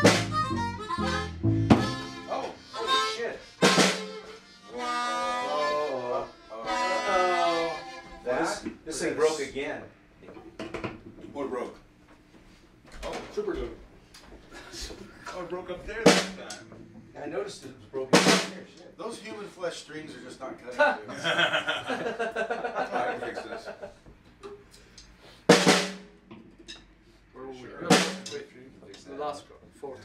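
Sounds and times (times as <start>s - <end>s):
sharp drum hit: 0.0s - 0.5s, 1.5s - 2.2s, 3.6s - 4.2s, 16.1s - 16.6s, 18.2s - 18.7s, 25.5s - 26.2s, 27.9s - 28.4s.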